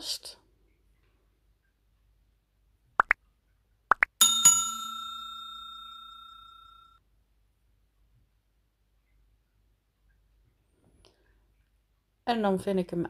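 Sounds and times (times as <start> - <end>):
bell chime: 4.2 - 7.0.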